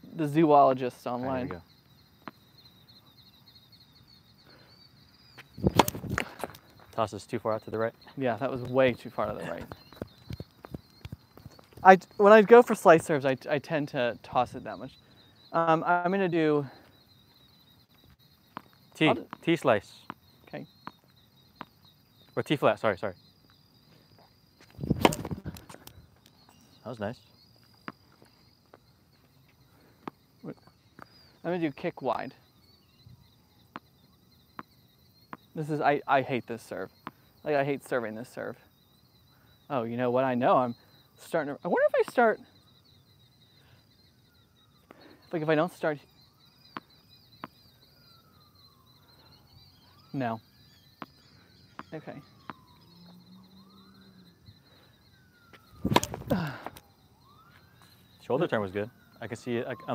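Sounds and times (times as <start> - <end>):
distant siren wailing: 0.0 - 59.9
high insect chirring: 0.0 - 59.9
tennis ball bouncing on court: 5.6 - 6.6, 24.9 - 25.7, 55.8 - 56.3.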